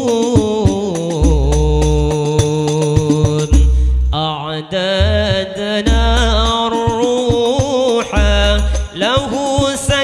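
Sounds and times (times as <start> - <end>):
frame drums: 0.0 - 4.1, 5.1 - 10.0
man singing into microphone: 0.0 - 10.0
deep bass drum: 0.4 - 4.2, 5.0 - 10.0.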